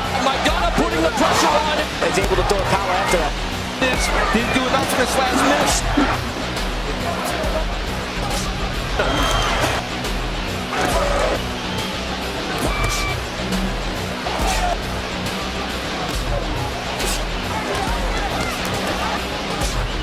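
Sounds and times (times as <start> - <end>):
indistinct voices: 0.0 - 9.8
background music with low beat: 0.0 - 20.0.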